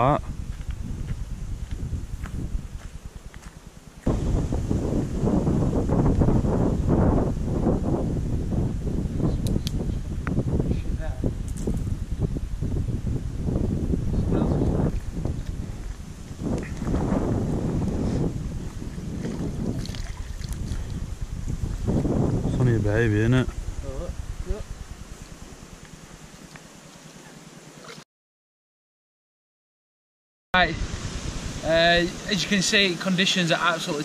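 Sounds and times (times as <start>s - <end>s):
wind buffeting microphone: 0.0s - 26.2s, 30.6s - 32.9s.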